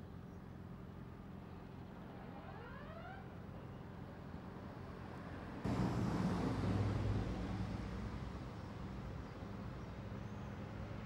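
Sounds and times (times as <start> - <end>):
faint low engine hum: 0.0 - 11.0.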